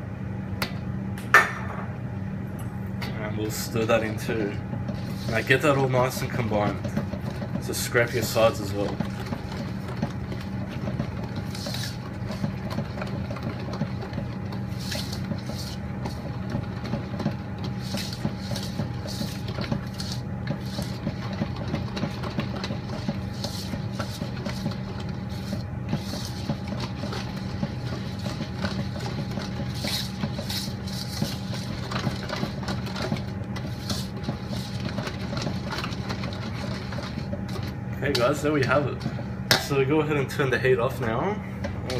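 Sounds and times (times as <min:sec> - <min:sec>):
low mechanical hum: 0:00.0 - 0:41.9
whisk scraping metal bowl: 0:03.4 - 0:40.4.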